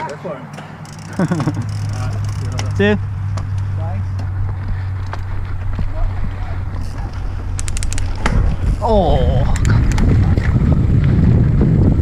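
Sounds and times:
steady low hum: 0:00.7 - 0:12.0.

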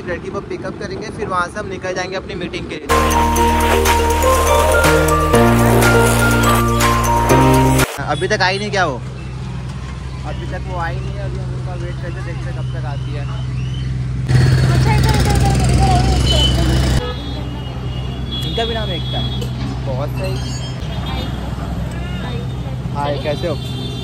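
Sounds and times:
street noise: 0:00.0 - 0:24.0
voices talking: 0:14.3 - 0:19.2.

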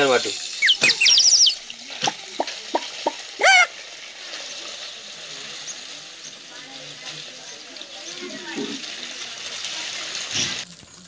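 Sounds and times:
high chirping calls: 0:00.6 - 0:01.7, 0:02.7 - 0:03.7
liquid pouring and splashing: 0:07.8 - 0:11.0.

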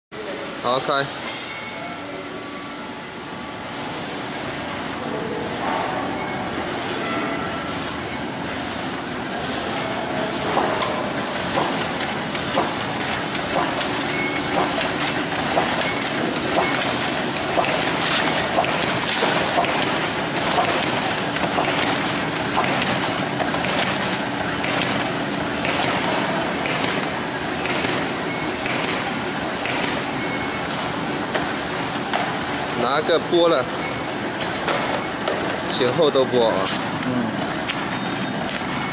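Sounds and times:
high-pitched machine whine: 0:00.2 - 0:11.4
mechanical clacks: 0:10.5 - 0:30.1.

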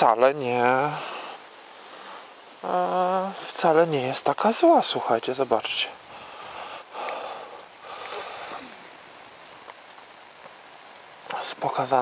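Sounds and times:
faint outdoor hiss: 0:00.0 - 0:12.0
soft ticks: 0:07.0 - 0:08.2.

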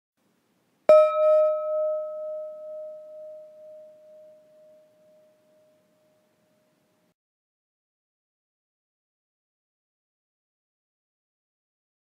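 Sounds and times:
meditation gong ringing: 0:00.9 - 0:06.3.

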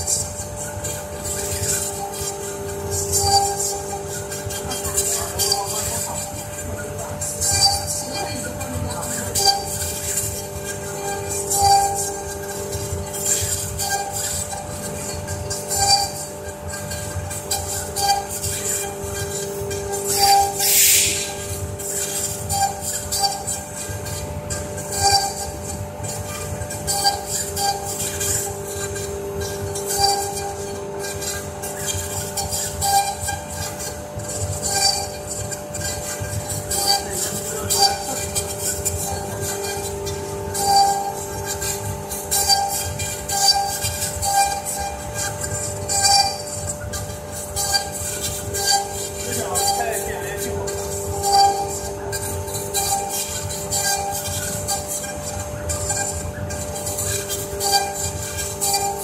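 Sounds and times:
router spindles whining: 0:00.0 - 0:59.0
cutters working through wood: 0:00.1 - 0:59.0.

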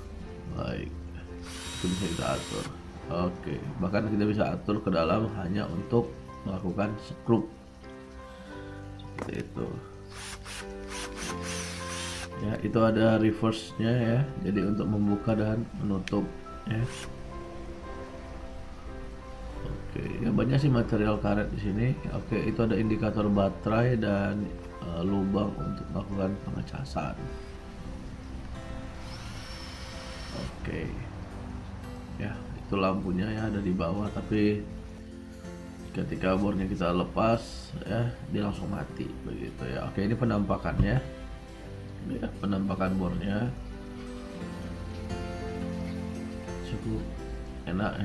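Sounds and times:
background music with held notes: 0:00.0 - 0:48.0
cordless drill motor whine: 0:01.4 - 0:02.7, 0:10.1 - 0:12.3, 0:29.0 - 0:30.5.

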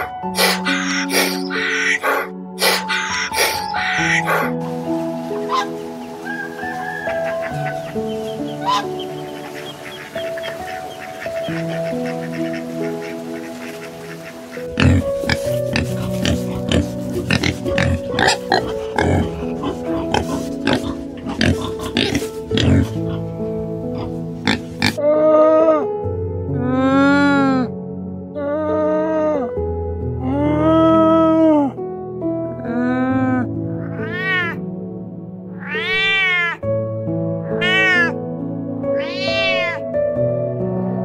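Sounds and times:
wild boar grunting: 0:00.0 - 0:04.5, 0:08.6 - 0:25.0
background music with sustained notes: 0:00.0 - 0:41.0
camel calling: 0:07.2 - 0:23.2.

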